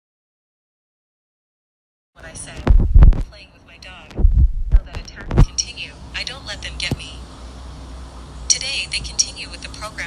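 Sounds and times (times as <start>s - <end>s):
heavy low thumps: 2.6s - 3.3s, 4.1s - 5.5s.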